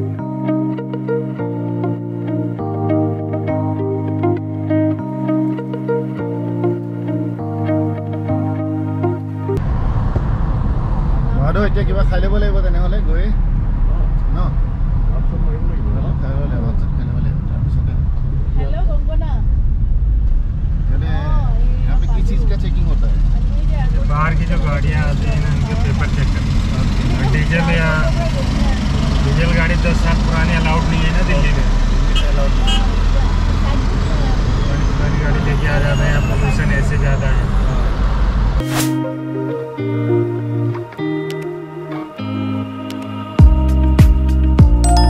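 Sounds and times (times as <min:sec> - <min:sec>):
car interior rumble: 0:09.6 - 0:35.6.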